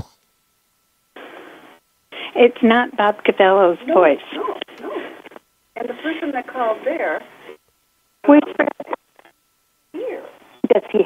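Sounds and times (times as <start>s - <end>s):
burst of telephone line hiss: 1.1s - 2.6s.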